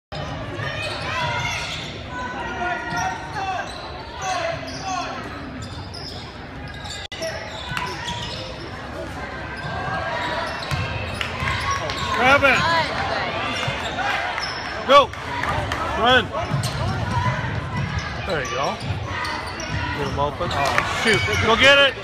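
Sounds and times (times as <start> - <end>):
spectators chatting and calling: 0.1 - 22.0.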